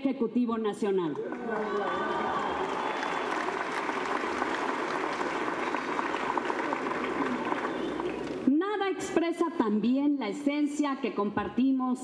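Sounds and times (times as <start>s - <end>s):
audience applauding: 1.2s - 8.5s.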